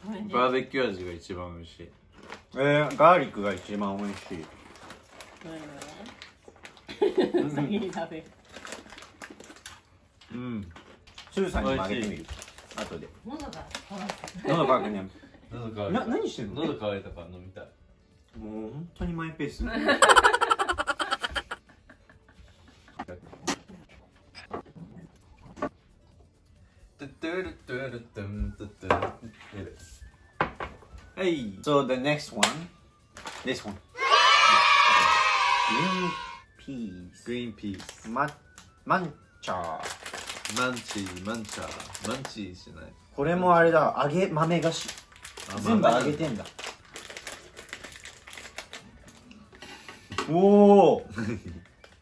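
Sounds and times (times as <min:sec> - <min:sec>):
plastic snack packet crinkling: 0:02.1 - 0:07.0, 0:07.8 - 0:14.7, 0:33.1 - 0:33.9, 0:37.6 - 0:38.8, 0:39.4 - 0:42.5, 0:44.0 - 0:49.4.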